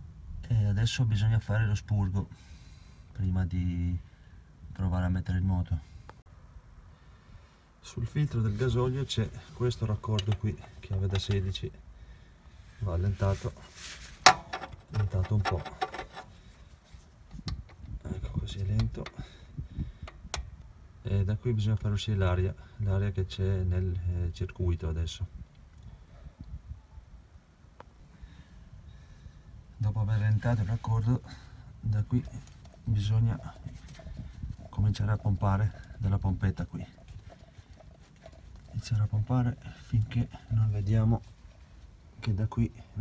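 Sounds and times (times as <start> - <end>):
fuel pump lever clicks: 10.1 - 11.4, 20.0 - 20.6.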